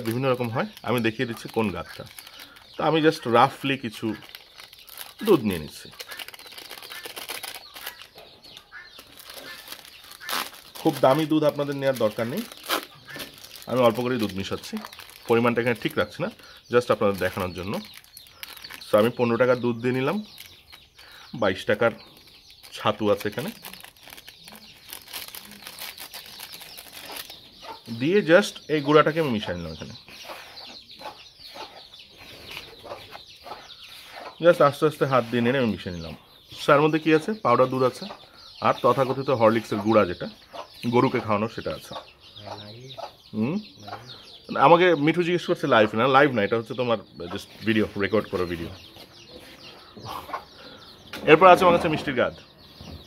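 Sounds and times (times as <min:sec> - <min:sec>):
foil sachet crinkling: 0:00.0 - 0:16.2, 0:16.8 - 0:19.2, 0:22.1 - 0:27.4
chicken clucking: 0:27.5 - 0:28.0, 0:28.8 - 0:34.4, 0:38.0 - 0:44.4, 0:48.3 - 0:52.1.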